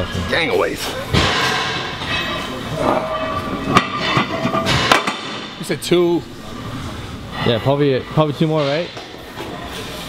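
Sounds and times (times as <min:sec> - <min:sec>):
weight plates clanking: 0:00.0 - 0:09.6.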